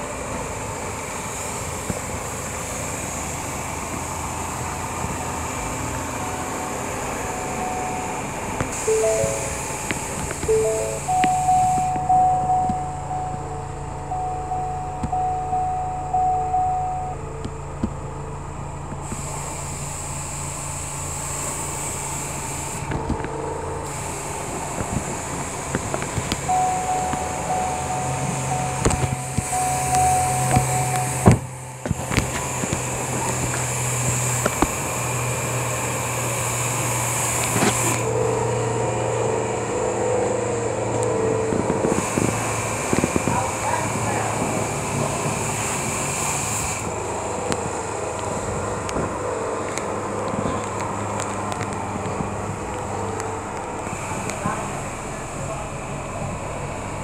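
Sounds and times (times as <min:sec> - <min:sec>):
diesel engine idling: 0:00.0 - 0:57.0
repeating electronic beep: 0:06.3 - 0:17.2, 0:26.4 - 0:31.5.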